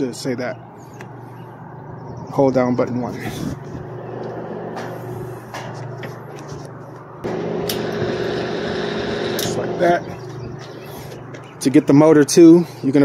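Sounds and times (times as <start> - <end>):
vending machine motor humming: 7.2 - 10.9.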